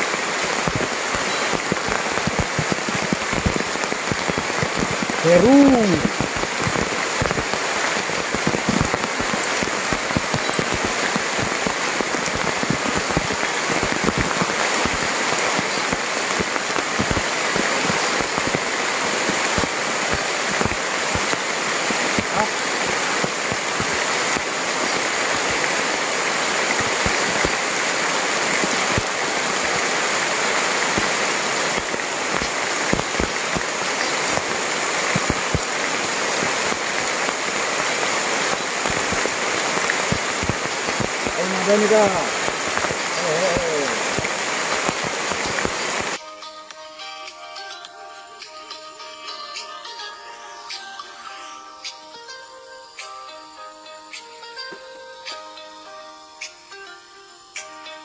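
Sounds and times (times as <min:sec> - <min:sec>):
rain falling on leaves: 0:00.0 - 0:46.2.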